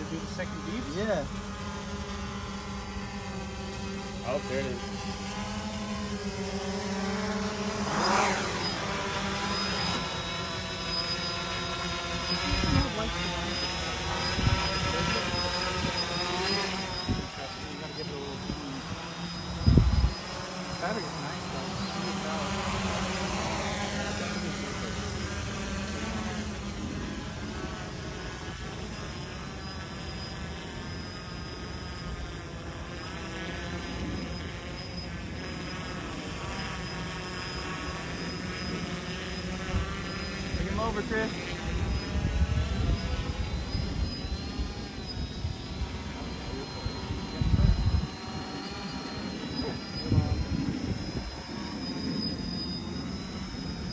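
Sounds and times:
drone motors whining: 0.0 - 53.9.

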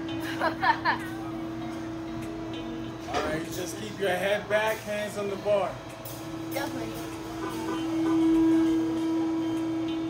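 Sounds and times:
mechanical hum of ride machinery: 0.0 - 10.0.

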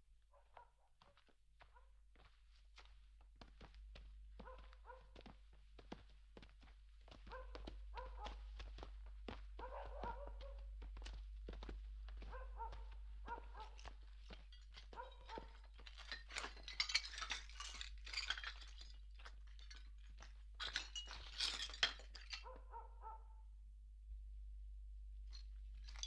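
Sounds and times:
footsteps: 0.5 - 22.4.

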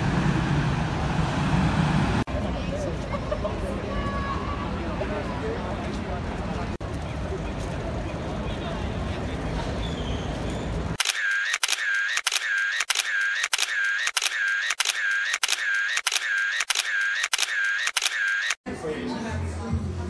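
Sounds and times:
street noise: 0.0 - 20.0
voices and shop chatter: 2.3 - 11.8, 18.0 - 20.0
camera shutter clicking: 11.0 - 18.6.

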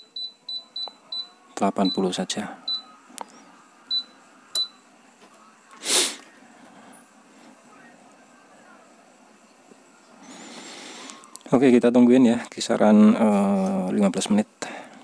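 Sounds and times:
low steady background noise: 0.0 - 15.0
short beeps: 3.9 - 4.8
loud hiss: 5.8 - 6.3.

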